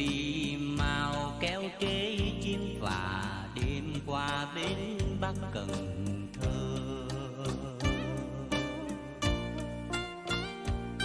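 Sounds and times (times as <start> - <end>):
man singing: 0.0 - 9.7
band accompaniment: 4.7 - 11.0.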